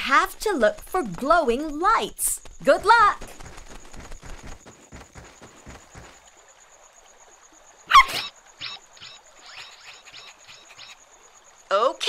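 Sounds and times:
light pattering footsteps: 0.0 - 6.4
cartoon dog yip: 7.9 - 8.3.

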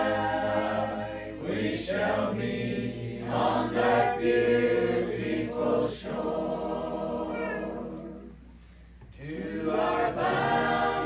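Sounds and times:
group singing a hymn a cappella: 0.0 - 11.0.

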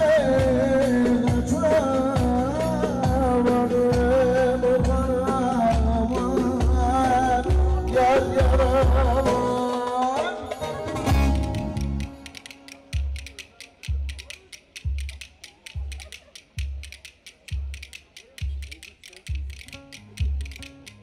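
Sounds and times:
deep drum beat: 0.0 - 10.2, 11.0 - 12.1, 12.9 - 21.0
person singing: 0.0 - 11.8.

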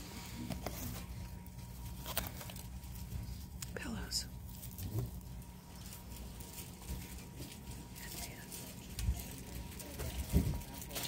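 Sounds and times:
faint voices: 6.0 - 11.0.

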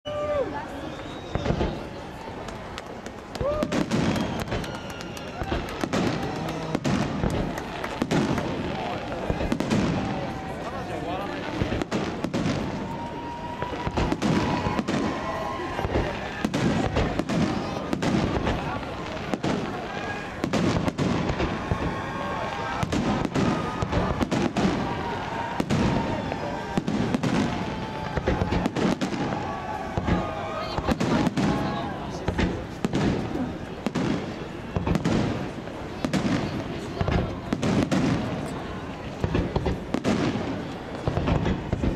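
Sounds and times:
crowd voices: 0.0 - 41.9.

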